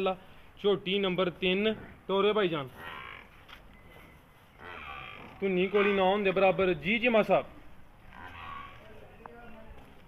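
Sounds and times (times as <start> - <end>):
buffalo grunting: 1.4 - 6.6, 8.0 - 9.0.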